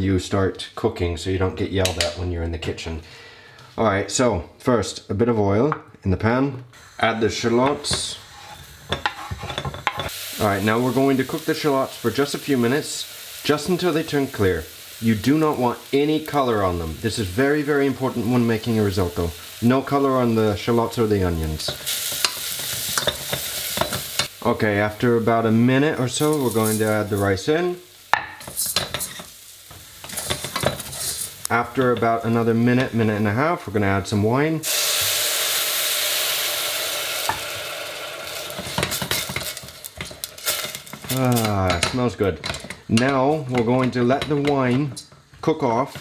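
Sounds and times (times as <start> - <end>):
oil sizzling: 6.7 - 46.0
wooden spoon scraping board and pot: 7.7 - 10.1
wooden spoon stirring and scraping: 7.7 - 10.1, 28.3 - 33.5, 38.4 - 46.0.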